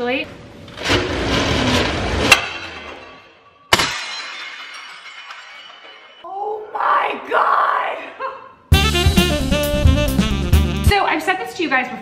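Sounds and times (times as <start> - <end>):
roller shutter door sliding: 0.6 - 3.0
shards rattling: 0.8 - 6.3
ceramic plate smashing: 1.9 - 6.3.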